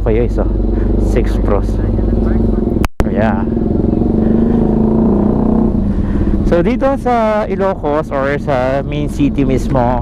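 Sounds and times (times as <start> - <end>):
scooter engine running: 0.0 - 10.0.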